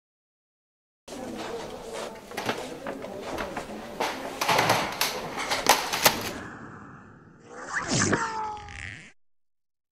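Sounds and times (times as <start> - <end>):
computer being smashed: 4.4 - 6.4.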